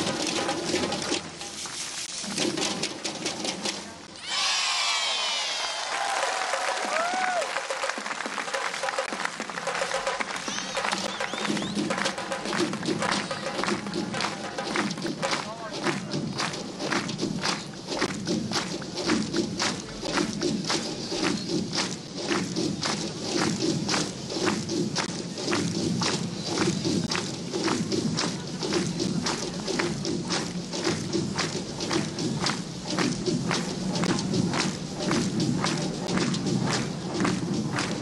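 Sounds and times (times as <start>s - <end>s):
drums beaten in steady rhythm: 0.0s - 1.5s, 6.7s - 38.0s.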